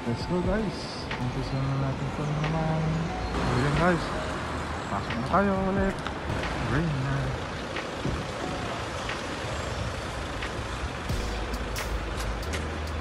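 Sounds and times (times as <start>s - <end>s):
hum of traffic: 0.0s - 13.0s
deep engine rumble: 0.2s - 13.0s.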